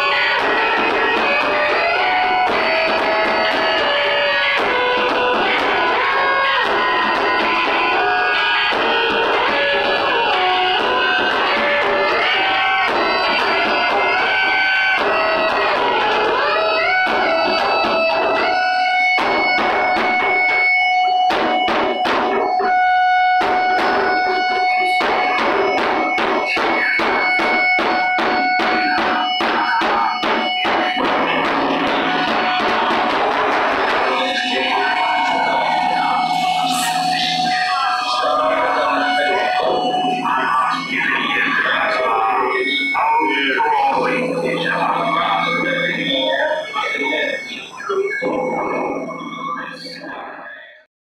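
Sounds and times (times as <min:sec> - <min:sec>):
large drums struck with sticks: 0:00.0 - 0:22.7, 0:23.3 - 0:37.1
sustained droning tones: 0:00.0 - 0:50.7
squealing warbling electronic sounds: 0:00.0 - 0:50.8.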